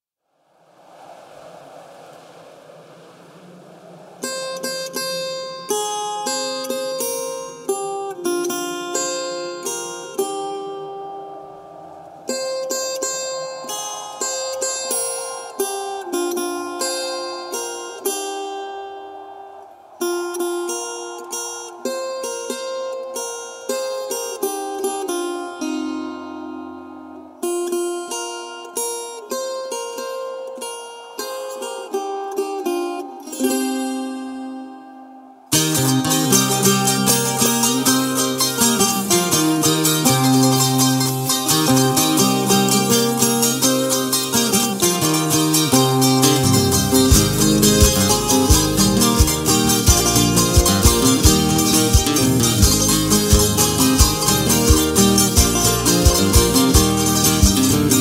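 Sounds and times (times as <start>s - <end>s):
soft sustained backing: 0.4s - 58.0s
plucked charango melody: 35.6s - 58.0s.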